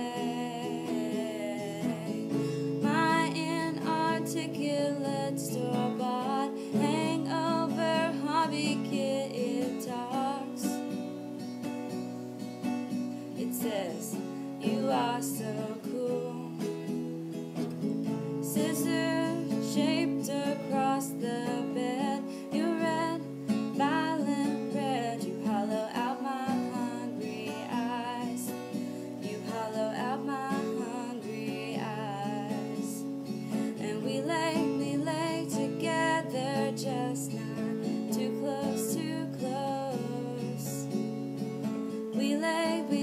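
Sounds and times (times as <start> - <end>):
acoustic guitar strumming: 0.0 - 43.0.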